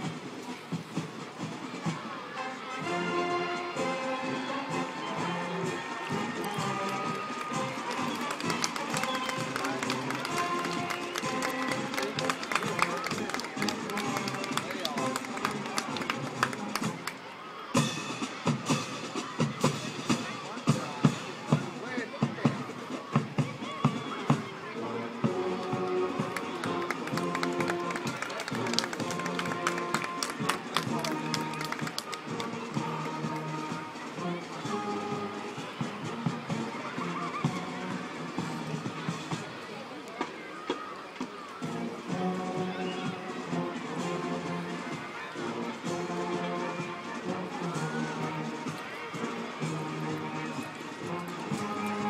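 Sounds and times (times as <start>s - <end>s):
marching band playing: 0.0s - 52.0s.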